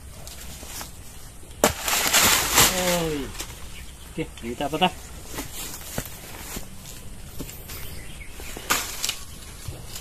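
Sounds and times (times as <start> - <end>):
rustling dry banana leaves: 0.0 - 10.0.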